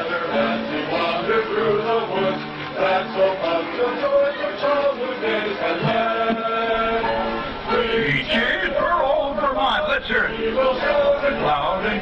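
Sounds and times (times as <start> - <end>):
group of voices singing: 0.0 - 12.0.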